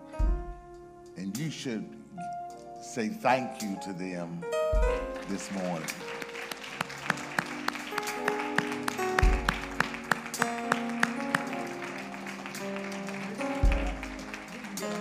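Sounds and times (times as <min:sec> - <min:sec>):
instrumental church music: 0:00.0 - 0:15.0
people clapping: 0:05.0 - 0:15.0.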